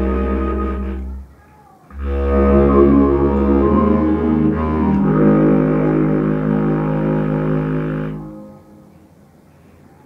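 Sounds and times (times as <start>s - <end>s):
clarinet playing slow melody: 0.0s - 1.3s, 1.9s - 9.0s
orchestral backing track: 0.0s - 1.3s, 1.9s - 9.0s.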